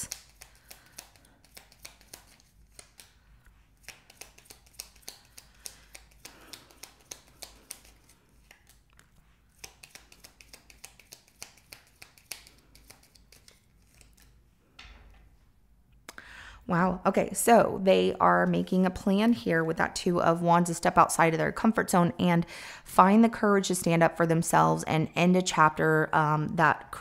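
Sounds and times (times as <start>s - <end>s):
cards being shuffled: 0.0s - 14.4s.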